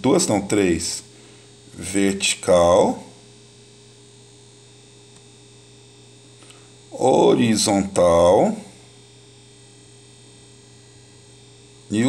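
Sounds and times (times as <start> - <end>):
electrical hum with hiss: 0.0 - 12.0.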